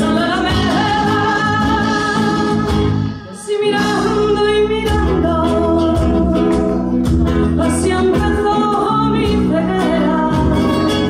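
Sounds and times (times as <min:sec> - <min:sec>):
drums: 0:00.0 - 0:11.0
nylon-string guitar: 0:00.0 - 0:11.0
woman singing: 0:00.0 - 0:11.0.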